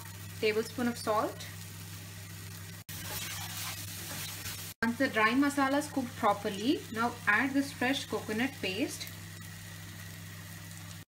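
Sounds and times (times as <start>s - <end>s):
masala sizzling in a pan: 0.0s - 11.0s.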